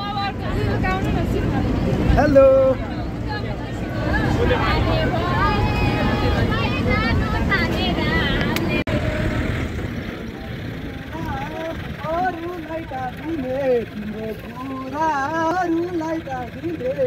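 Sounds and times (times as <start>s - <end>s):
bus engine and road noise: 0.0s - 17.0s
people's voices: 0.0s - 17.0s.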